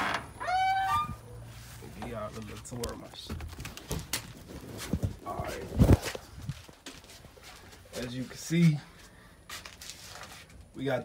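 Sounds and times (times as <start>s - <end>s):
door hinges squeaking: 0.0s - 1.4s.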